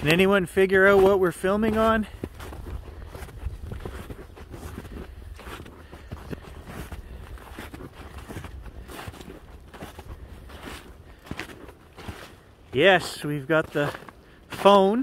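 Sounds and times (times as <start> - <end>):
footsteps crunching through snow: 0.0 - 15.0.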